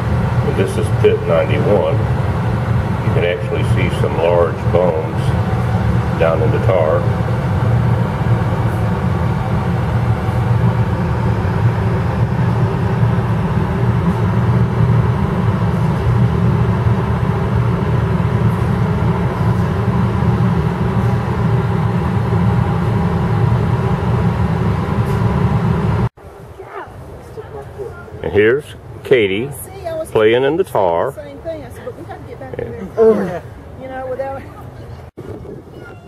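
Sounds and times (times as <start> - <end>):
low mechanical drone: 0.0 - 36.0.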